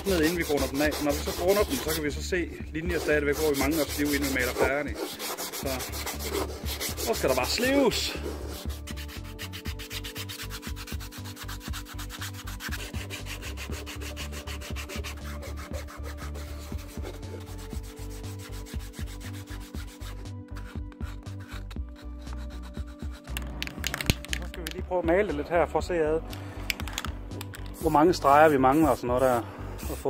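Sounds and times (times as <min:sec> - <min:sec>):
sandpaper rubbing on plastic: 0:00.0 - 0:02.2, 0:02.9 - 0:23.4, 0:27.8 - 0:30.0.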